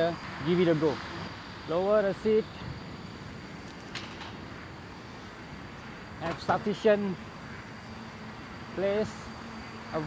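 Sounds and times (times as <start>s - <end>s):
distant road traffic hum: 0.0s - 10.0s.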